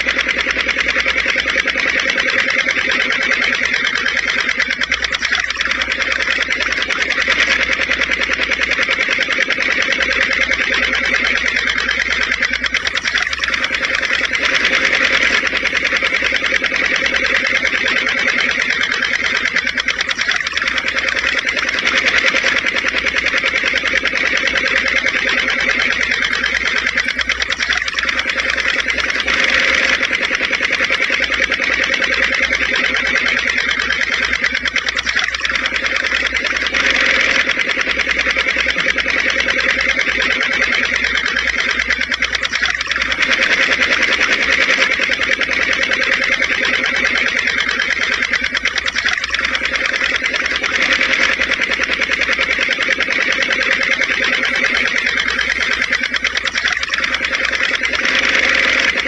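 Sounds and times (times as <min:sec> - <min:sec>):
small electric motor whining: 0:00.0 - 0:59.0.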